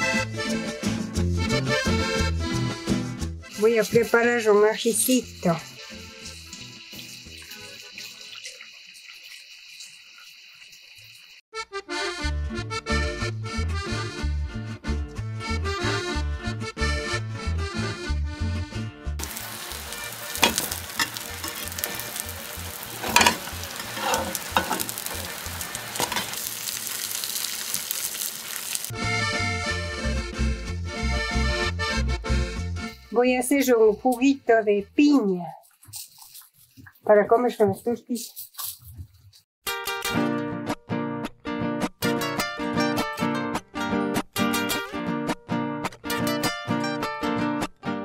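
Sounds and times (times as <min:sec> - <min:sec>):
music with beat and accordion: 0:00.0 - 0:03.6, 0:11.6 - 0:19.0, 0:28.9 - 0:33.1
tortillas sizzling in a hot pan: 0:04.8 - 0:11.4, 0:19.2 - 0:28.9.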